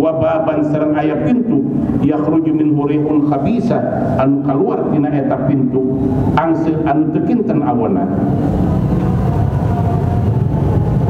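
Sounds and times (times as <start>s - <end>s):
speech: 0.0s - 8.2s
steady low rumble: 0.0s - 11.0s.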